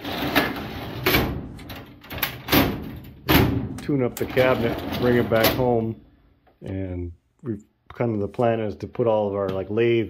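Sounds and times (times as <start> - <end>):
metal drawers sliding on runners: 4.2 - 5.8.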